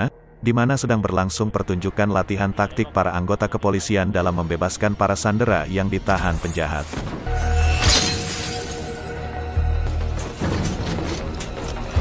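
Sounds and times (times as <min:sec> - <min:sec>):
dramatic film score music: 0:00.0 - 0:12.0
window glass shattering: 0:07.4 - 0:09.2.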